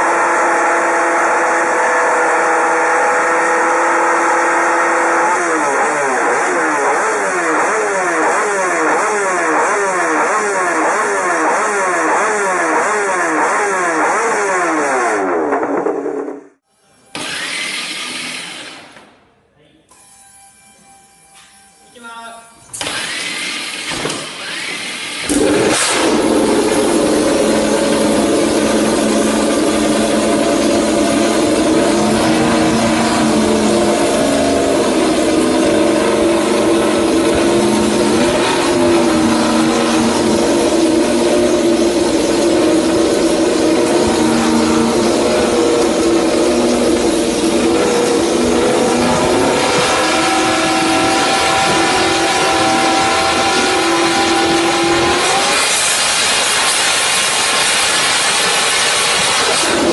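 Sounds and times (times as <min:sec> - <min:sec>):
motorcycle engine running loud: 0:00.0 - 0:16.6, 0:25.3 - 0:59.9.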